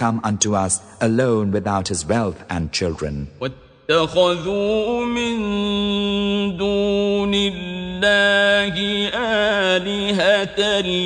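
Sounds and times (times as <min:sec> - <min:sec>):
man reciting melodically: 0:00.0 - 0:11.0.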